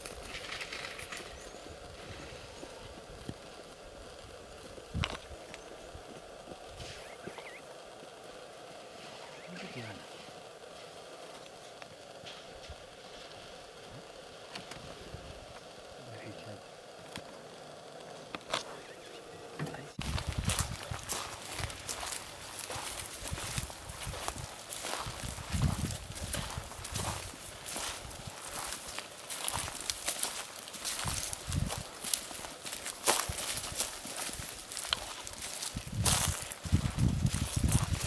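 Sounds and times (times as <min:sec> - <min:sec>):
steady background noise: 0:00.0 - 0:38.0
bird chirping: 0:00.3 - 0:01.8, 0:06.8 - 0:07.7, 0:09.1 - 0:10.0, 0:17.6 - 0:20.0
footsteps: 0:08.8 - 0:15.8, 0:18.0 - 0:18.9, 0:19.6 - 0:38.0.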